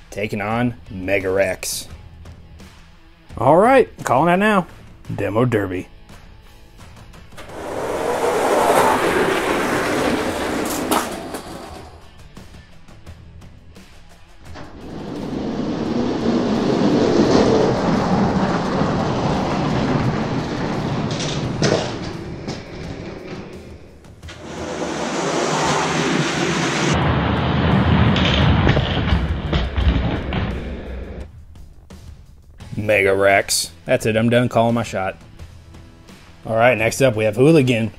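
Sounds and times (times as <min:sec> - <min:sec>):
toy trucks rolling on plastic track: 0:07.4 - 0:12.0, 0:14.8 - 0:23.5.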